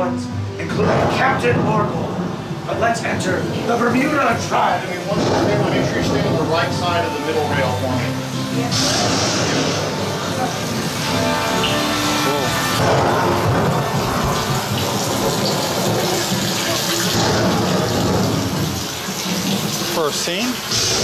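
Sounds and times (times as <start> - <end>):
rushing water effect: 0.6 - 21.0.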